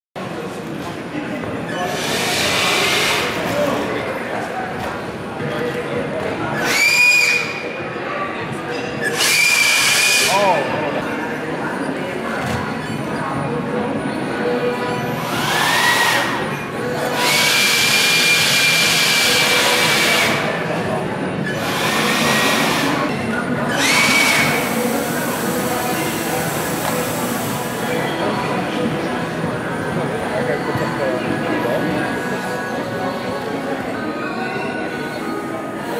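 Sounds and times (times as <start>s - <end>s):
hall chatter: 0.2s - 35.9s.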